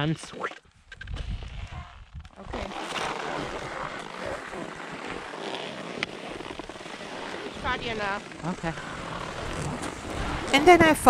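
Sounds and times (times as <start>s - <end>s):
wind rumbling on microphone: 0.7s - 11.0s
skis scraping over snow: 1.7s - 11.0s.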